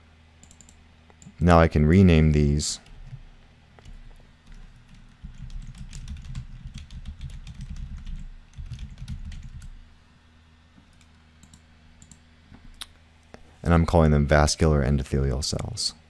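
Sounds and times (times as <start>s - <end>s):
computer keyboard typing: 0.4s - 1.3s, 3.8s - 9.8s, 10.9s - 12.2s.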